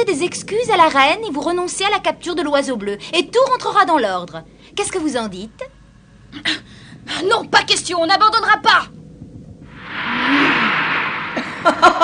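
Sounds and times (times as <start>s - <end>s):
cartoon whoosh: 9.7s - 12.0s
low sliding tone: 9.7s - 12.0s.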